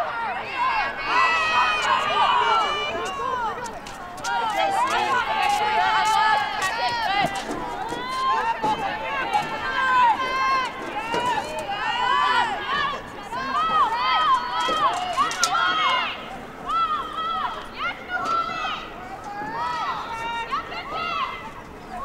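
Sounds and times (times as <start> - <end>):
women shouting: 0.0 - 22.0.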